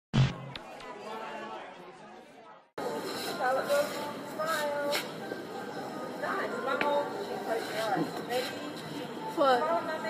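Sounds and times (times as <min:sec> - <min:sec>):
indistinct background chatter: 0:00.4 - 0:10.0.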